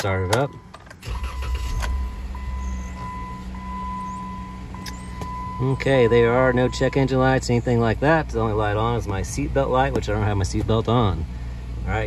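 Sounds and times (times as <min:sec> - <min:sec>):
car engine starting and idling: 0:00.0 - 0:12.0.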